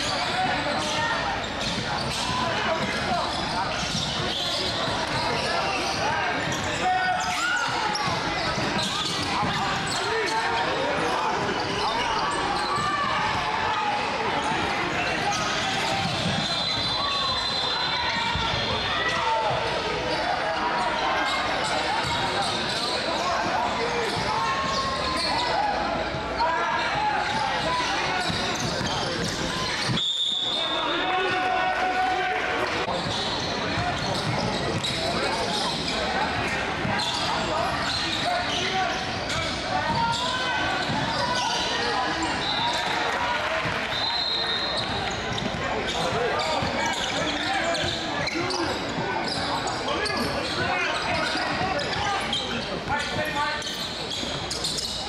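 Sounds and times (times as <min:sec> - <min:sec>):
overlapping voices in a gym: 0:00.0 - 0:55.0.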